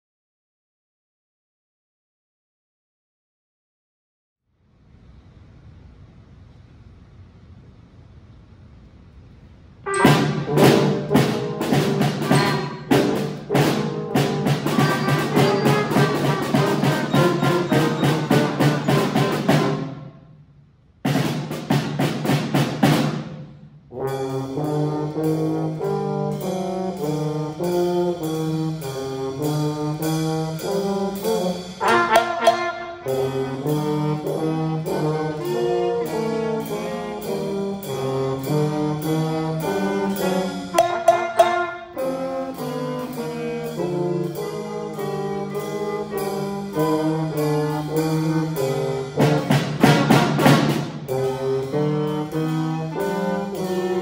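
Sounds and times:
held brass notes: 0:09.8 - 0:20.3, 0:21.1 - 0:54.0
student band playing: 0:09.8 - 0:54.0
sharp drum strokes: 0:09.9 - 0:20.4, 0:21.0 - 0:54.0.

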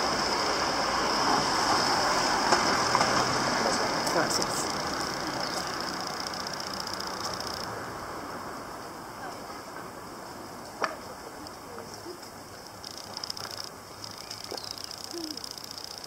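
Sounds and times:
vehicle engine running: 0:02.7 - 0:08.3
background voices: 0:03.0 - 0:06.0.

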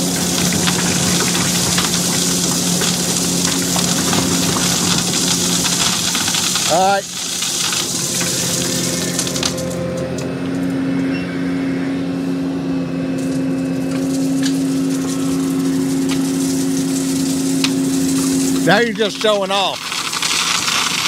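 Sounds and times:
gravel pouring from excavator bucket: 0:00.0 - 0:09.9, 0:13.2 - 0:21.0
short rising whine: 0:00.0 - 0:18.8
excavator engine running: 0:00.0 - 0:21.0.

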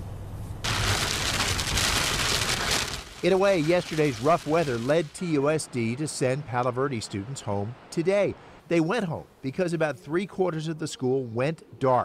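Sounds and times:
rain on car windshield and roof: 0:00.6 - 0:06.2.

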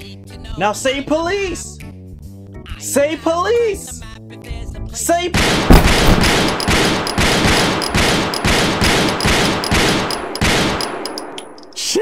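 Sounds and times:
automatic gunfire: 0:05.4 - 0:11.6.

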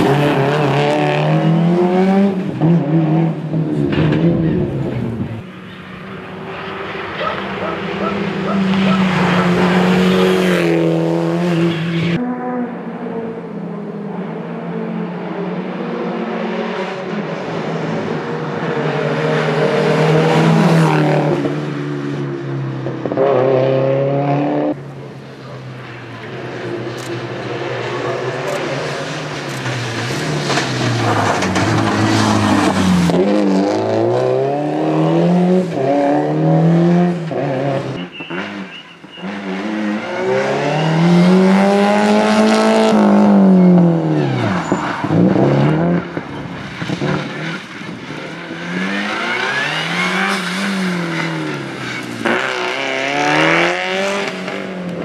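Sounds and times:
rally car engine revving: 0:00.0 - 0:05.4, 0:06.0 - 0:24.8, 0:25.4 - 0:55.0.

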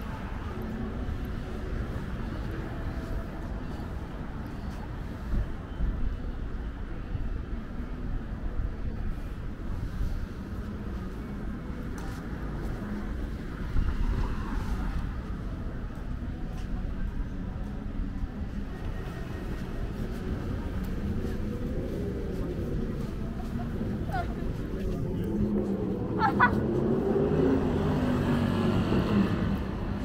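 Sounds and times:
low rumble of traffic: 0:00.0 - 0:30.0
people talking: 0:20.5 - 0:27.6.

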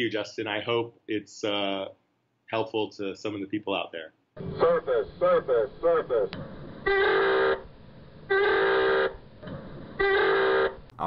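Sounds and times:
klaxon horn alarm blasts: 0:06.9 - 0:07.7, 0:08.3 - 0:09.2, 0:10.0 - 0:10.9.

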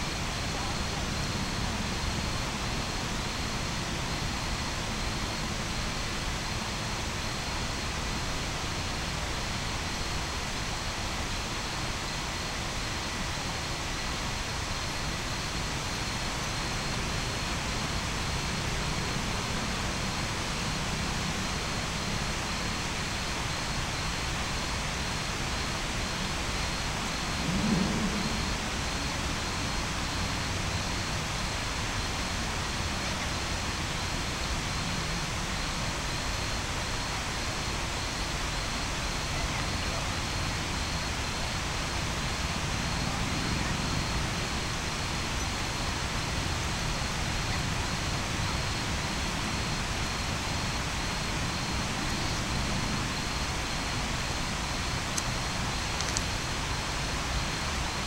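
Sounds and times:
city hiss and hum: 0:00.0 - 0:58.0.

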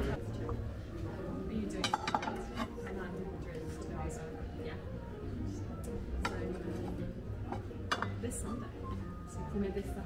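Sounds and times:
ceramic bowls clinking: 0:01.7 - 0:03.0, 0:06.2 - 0:08.5.

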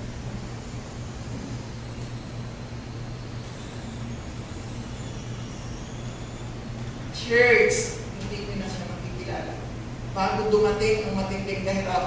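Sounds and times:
low hum of sound system: 0:00.0 - 0:12.0.

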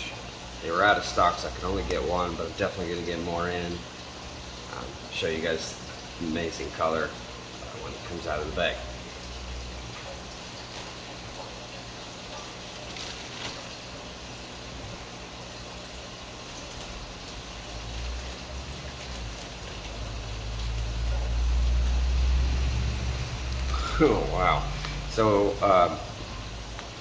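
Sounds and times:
aquarium water bubbling: 0:00.0 - 0:27.0
plastic bags handled: 0:10.6 - 0:11.2, 0:12.6 - 0:13.9, 0:17.9 - 0:20.0.

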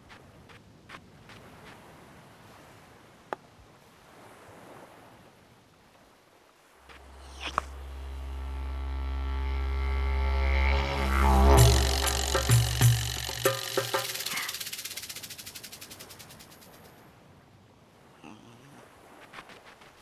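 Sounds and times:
low buzzing drone: 0:06.8 - 0:16.6
fast pulsing wobble: 0:07.0 - 0:16.8.

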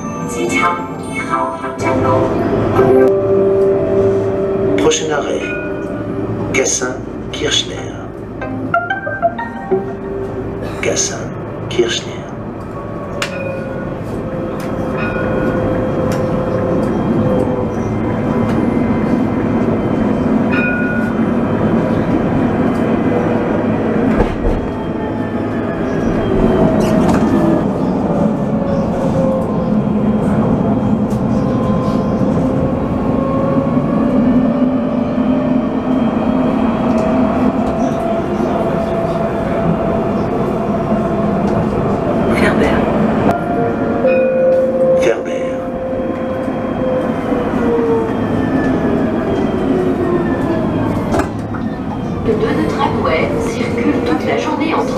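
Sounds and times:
tram rolling rumble: 0:00.0 - 0:54.9.

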